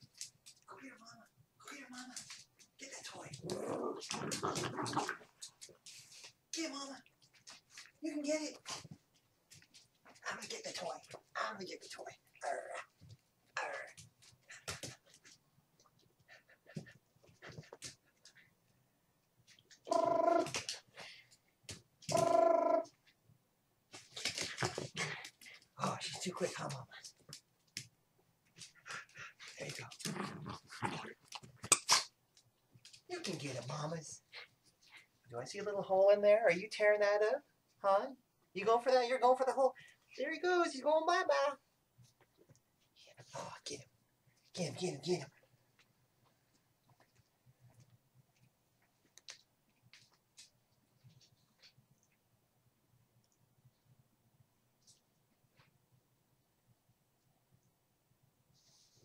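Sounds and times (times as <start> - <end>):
dog jaws snapping: 3.4 - 5.2, 31.4 - 32.1
dogs growling: 3.4 - 5.5, 28.8 - 31.2.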